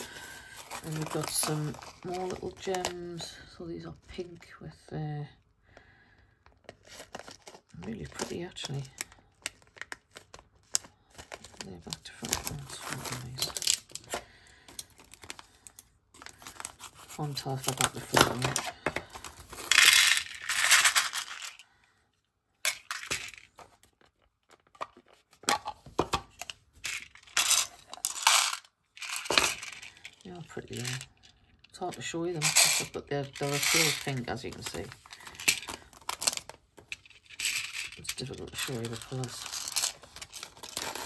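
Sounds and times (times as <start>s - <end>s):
gems rattling in plastic box: 0.0s - 3.3s, 11.2s - 21.6s, 22.6s - 23.8s, 25.6s - 41.0s
plastic bag crinkling: 0.0s - 3.3s, 6.7s - 14.4s, 15.0s - 21.6s, 32.3s - 41.0s.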